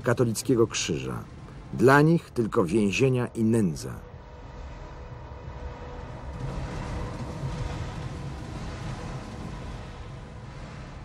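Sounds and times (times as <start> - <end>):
faint constant hum: 0.0 - 11.0
film soundtrack noise and rumble: 0.0 - 11.0.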